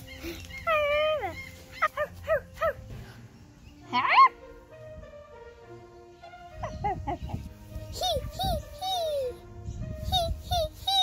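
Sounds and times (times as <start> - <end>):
puppy yipping and whimpering: 0.0 - 2.8
soft background music: 0.0 - 11.0.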